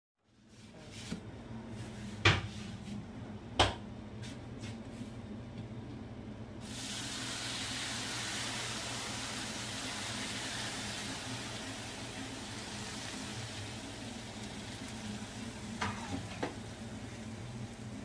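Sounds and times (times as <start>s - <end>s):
syrup sizzling on hot pastry: 6.6s - 16.3s.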